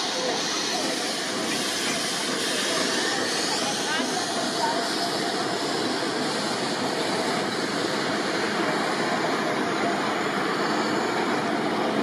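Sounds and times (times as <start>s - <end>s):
steam locomotive hissing: 0.0s - 12.0s.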